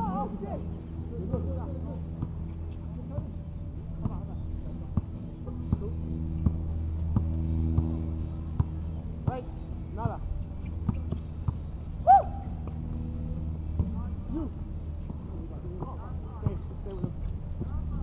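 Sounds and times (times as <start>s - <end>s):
steady low hum: 0.0s - 18.0s
basketball bouncing on asphalt: 1.2s - 14.2s, 14.8s - 18.0s.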